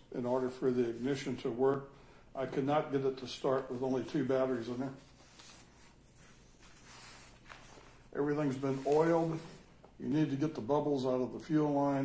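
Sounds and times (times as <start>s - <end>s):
faint handling rustles: 3.3s - 10.4s.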